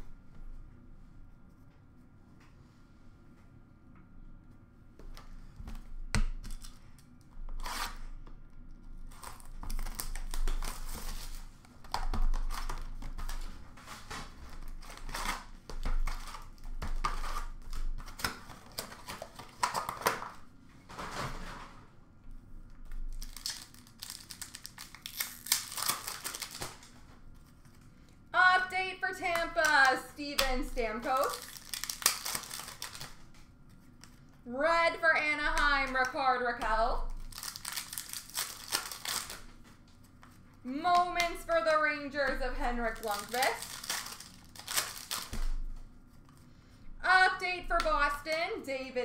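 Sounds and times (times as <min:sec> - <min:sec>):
foil wrappers tearing and crinkling: 0:07.5 - 0:08.1, 0:09.0 - 0:20.4, 0:23.0 - 0:27.0, 0:29.3 - 0:33.3, 0:37.0 - 0:39.7, 0:42.8 - 0:45.7
cards being shuffled: 0:09.1 - 0:20.4, 0:23.1 - 0:27.8, 0:29.3 - 0:34.4, 0:37.1 - 0:41.6, 0:42.3 - 0:46.5
person speaking: 0:28.4 - 0:31.4, 0:34.5 - 0:37.2, 0:40.6 - 0:43.7, 0:47.0 - 0:49.0.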